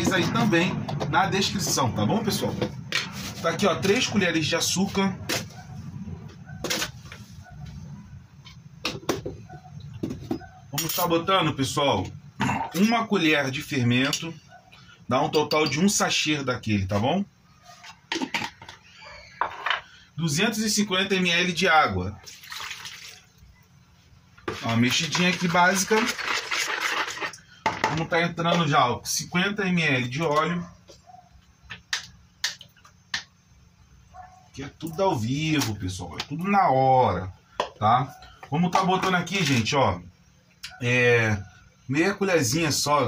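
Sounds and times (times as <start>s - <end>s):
water stirred in plastic bowl: 22.2s - 23.3s, 24.4s - 27.4s.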